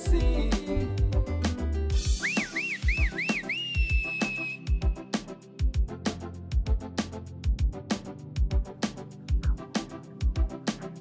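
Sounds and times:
background music with drum beat: 0.0s - 11.0s
high swooping whistle: 2.0s - 4.9s.

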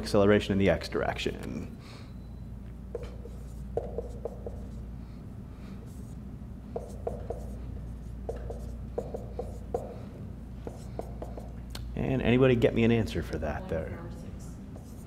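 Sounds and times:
low room hum: 0.0s - 15.0s
marker squeaking on whiteboard: 2.9s - 4.8s, 6.8s - 10.0s, 14.8s - 15.0s.

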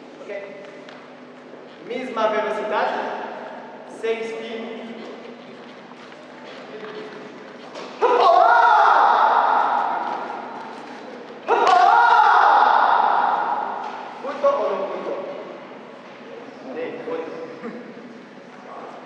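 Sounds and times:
loud shouts echoing in hall: 7.9s - 15.6s.

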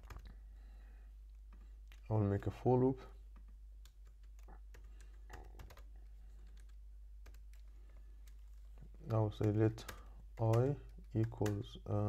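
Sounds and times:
faint typing on a keyboard: 0.0s - 0.5s, 1.2s - 12.0s.

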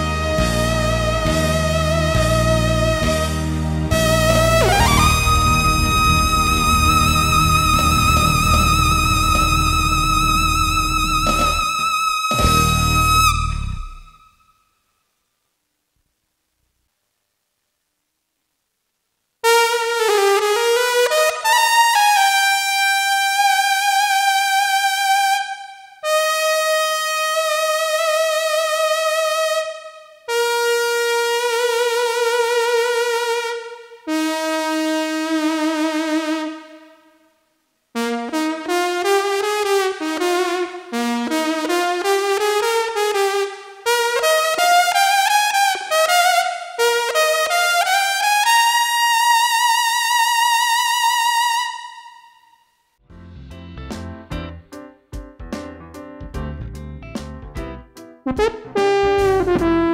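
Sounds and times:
backing track with electric bass: 0.0s - 14.2s, 53.0s - 59.9s
synthesizer lead: 3.9s - 14.1s.

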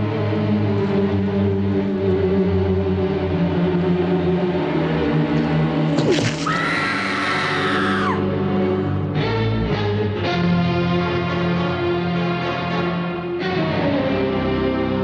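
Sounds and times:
woman screaming: 6.4s - 8.3s
low sustained horror score: 6.4s - 9.0s.

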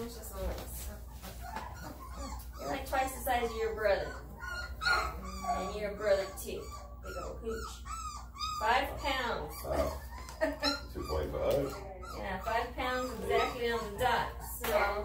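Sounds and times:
puppies whining and squealing: 0.0s - 15.0s.

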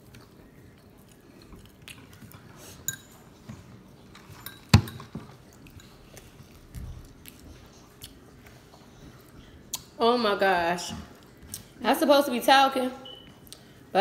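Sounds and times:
person chewing steak: 0.0s - 4.1s, 5.4s - 10.0s, 13.4s - 13.9s.

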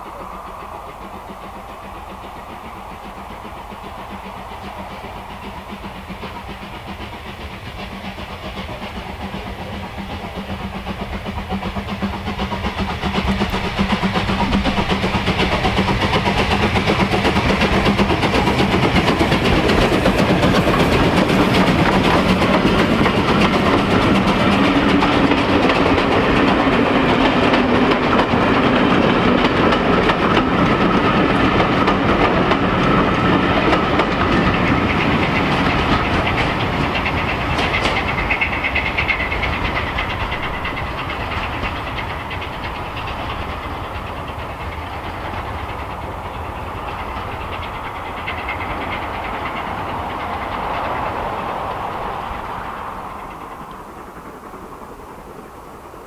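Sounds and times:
steam locomotive passing: 0.0s - 56.0s
wheels clicking over rail joints: 0.0s - 56.0s.

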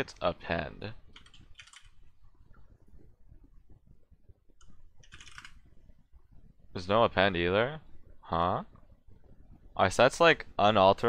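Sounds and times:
faint keyboard typing: 1.1s - 2.6s, 4.6s - 5.8s.

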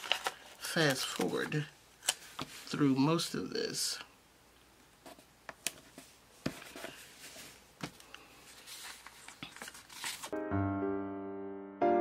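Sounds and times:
piano music: 10.3s - 12.0s.

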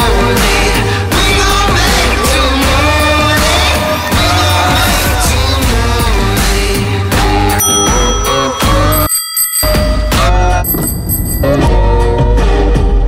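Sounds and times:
background music: 0.0s - 13.0s
bicycle bell ringing: 7.6s - 11.7s.

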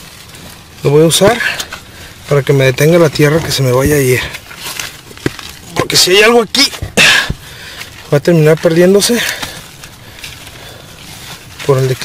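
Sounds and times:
faint rustling: 0.0s - 12.0s
loose soil crumbling: 0.0s - 12.0s.

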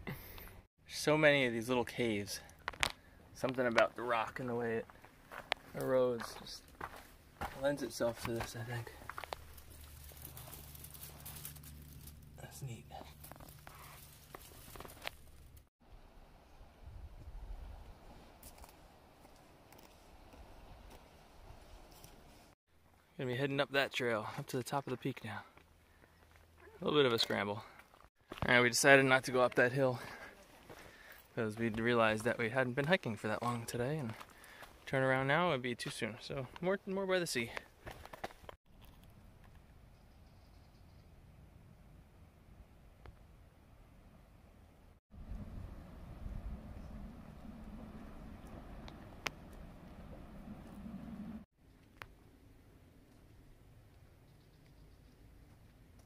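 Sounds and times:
wind rumble on microphone: 16.6s - 18.4s, 45.2s - 51.4s.

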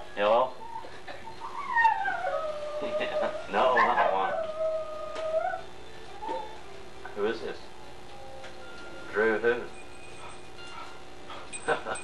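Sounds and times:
dog howling: 0.5s - 6.8s
dog yelping: 0.6s - 6.7s.

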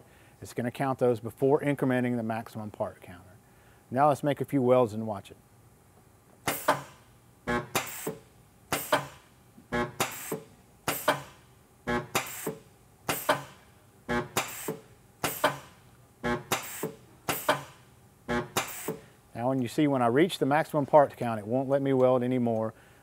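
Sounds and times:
spot welder bursts: 6.4s - 19.2s.

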